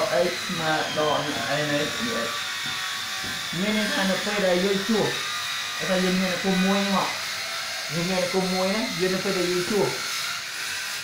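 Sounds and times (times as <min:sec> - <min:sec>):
man speaking: 0:00.0 - 0:02.3, 0:03.5 - 0:05.2, 0:05.8 - 0:07.1, 0:07.9 - 0:10.0.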